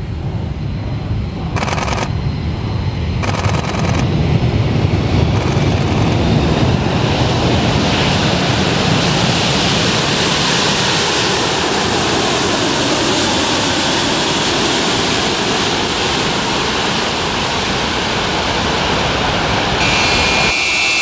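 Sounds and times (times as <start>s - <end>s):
jet engines rushing: 0.0s - 21.0s.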